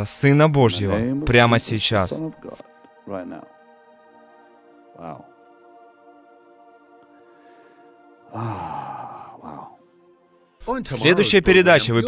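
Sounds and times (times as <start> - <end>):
soft held music chords: 0.5 - 3.5.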